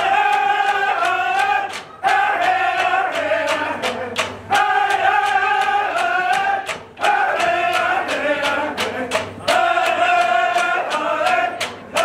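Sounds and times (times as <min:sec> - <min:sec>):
group singing in unison: 0:00.0 - 0:12.0
quick percussive beat: 0:00.0 - 0:12.0.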